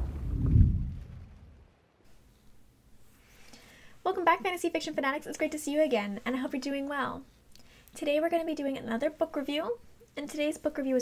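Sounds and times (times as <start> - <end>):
deep low boom: 0.0 - 2.0.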